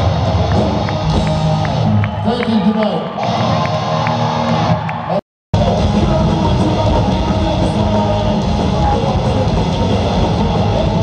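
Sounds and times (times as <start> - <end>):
punk rock band playing live: 0.0 - 2.1, 5.6 - 11.0.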